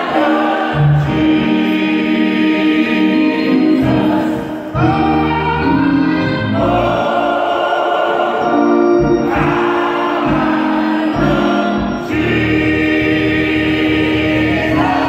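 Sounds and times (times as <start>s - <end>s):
keyboard with low bass notes: 0.0s - 7.5s, 8.3s - 15.0s
gospel choir singing: 0.0s - 15.0s.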